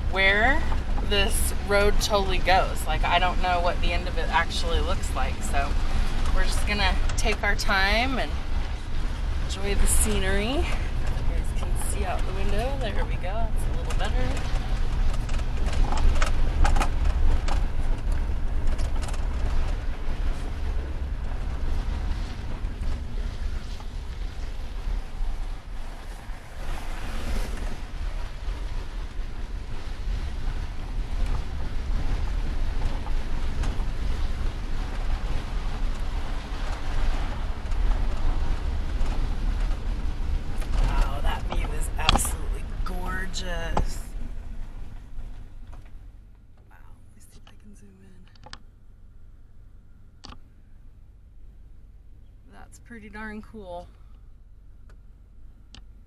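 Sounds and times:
rushing wind noise: 0.0s - 45.4s
engine and tyres rumbling: 0.0s - 56.0s.

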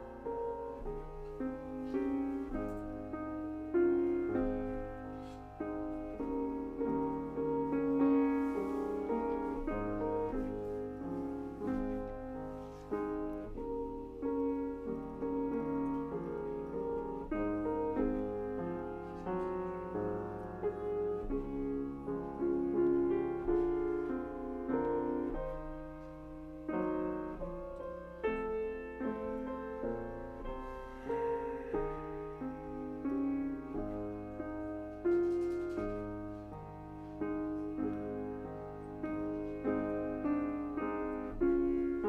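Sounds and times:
solo piano playing: 0.0s - 42.0s.

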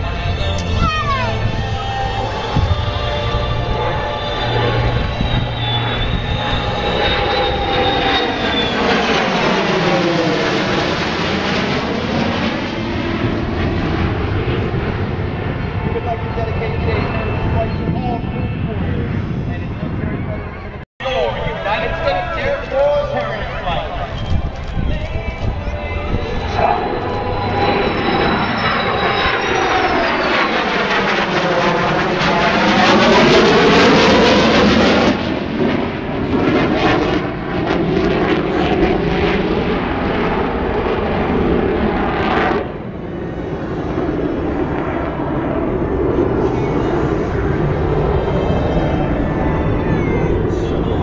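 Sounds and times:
jet engine roar: 0.0s - 51.0s.

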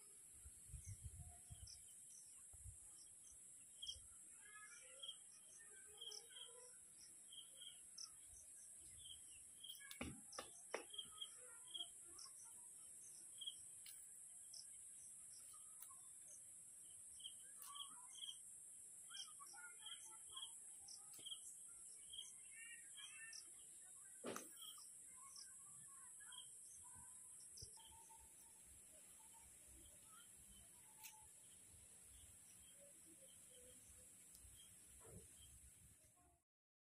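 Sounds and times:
birds chirping: 0.8s - 35.8s.

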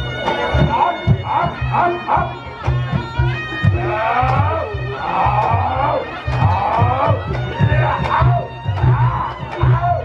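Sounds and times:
reedy shawm melody: 0.0s - 10.0s.

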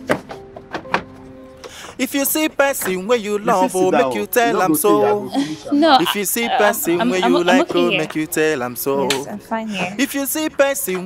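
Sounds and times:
held synthesizer notes: 3.2s - 9.7s.

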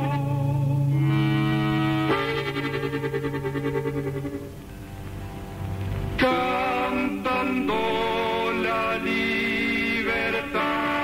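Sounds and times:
accordion chord with tremolo: 0.0s - 8.4s.

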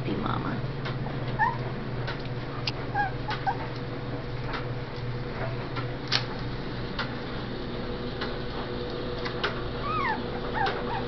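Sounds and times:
steady low hum: 0.0s - 11.0s
small pet squeaking: 1.4s - 1.6s, 2.9s - 3.6s, 9.8s - 11.0s.

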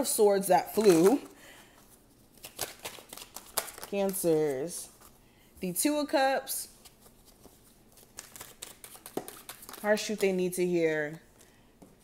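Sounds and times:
cards being shuffled: 2.3s - 5.2s, 6.8s - 10.5s.

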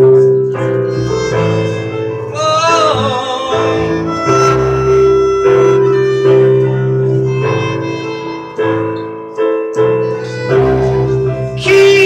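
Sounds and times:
upright bass line: 0.0s - 9.1s, 10.0s - 12.0s
keyboard chords: 0.0s - 12.0s
violin melody: 0.6s - 12.0s.

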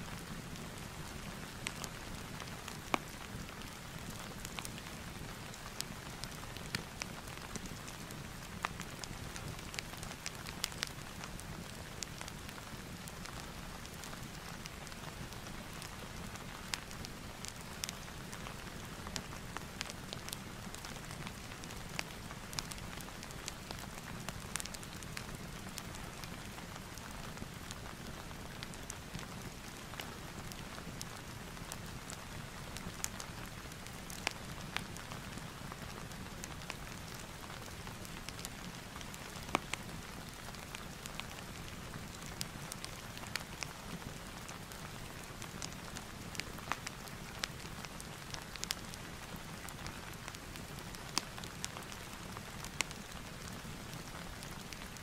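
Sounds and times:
steady rain: 0.0s - 55.0s
wood fire crackling: 0.1s - 55.0s.

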